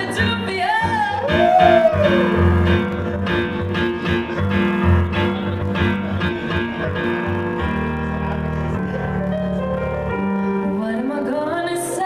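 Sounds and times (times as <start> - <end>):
woman singing: 0.0 - 1.8, 10.6 - 12.0
sustained keyboard chords: 0.0 - 12.0.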